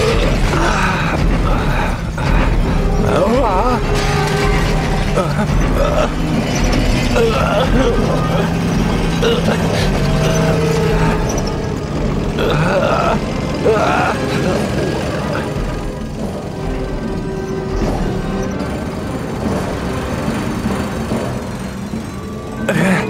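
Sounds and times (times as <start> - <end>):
background music: 0.0 - 23.0
war machine drone and rumble: 0.0 - 23.0.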